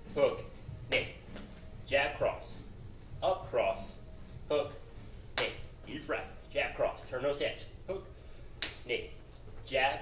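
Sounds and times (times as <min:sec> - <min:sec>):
sharp snaps: 0:00.9 - 0:01.2, 0:05.3 - 0:05.6, 0:08.6 - 0:08.9
man speaking: 0:01.8 - 0:02.6, 0:03.2 - 0:08.2, 0:08.8 - 0:10.0.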